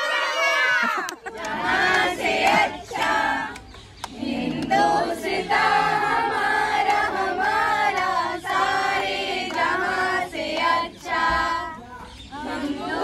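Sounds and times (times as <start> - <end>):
group singing in unison: 1.2 - 13.0.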